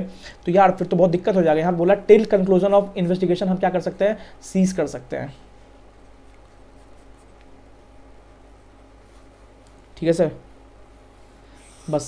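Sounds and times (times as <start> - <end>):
low room hum: 0.0 - 12.0
stylus scratching on tablet: 6.0 - 7.5.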